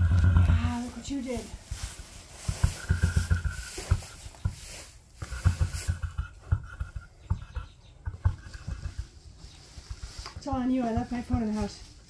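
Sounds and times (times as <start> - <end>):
rustling in straw bedding: 0.0 - 6.4, 8.4 - 12.0.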